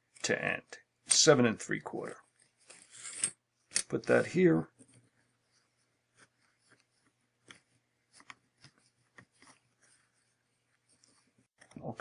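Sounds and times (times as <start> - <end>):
light taps and rustles of paper: 4.8 - 12.0.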